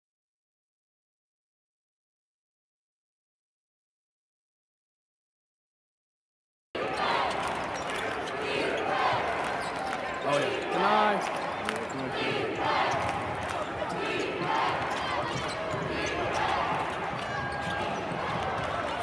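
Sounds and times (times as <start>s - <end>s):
arena crowd noise: 6.8s - 19.0s
voices calling out: 6.8s - 19.0s.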